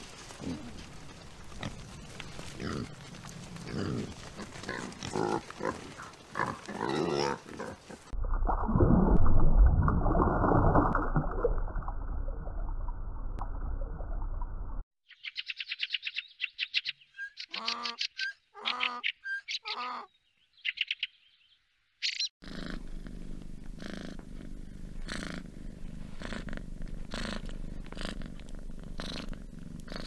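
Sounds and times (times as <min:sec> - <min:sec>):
donkey braying: 0:17.5 - 0:20.1
cat purring: 0:22.4 - 0:30.0.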